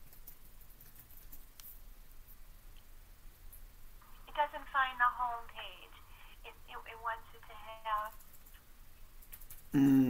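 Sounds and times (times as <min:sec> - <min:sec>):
person speaking over phone line: 0:04.3 - 0:08.1.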